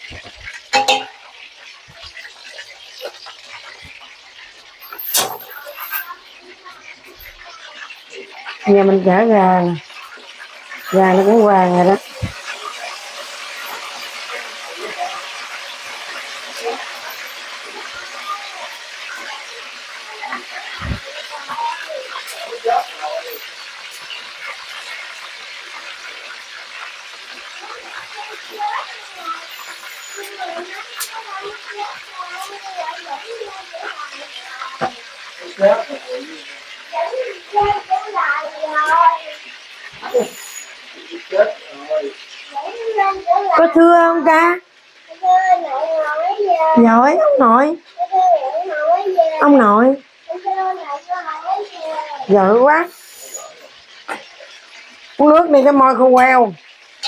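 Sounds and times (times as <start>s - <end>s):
chicken sizzling in hot oil: 0.0s - 57.0s
knocks against pan: 0.1s - 1.3s.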